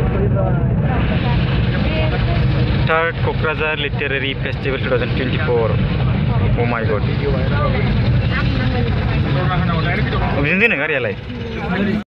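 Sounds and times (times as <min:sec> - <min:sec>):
faint voices: 0:00.0 - 0:12.0
vehicle engine and road rumble: 0:00.0 - 0:12.0.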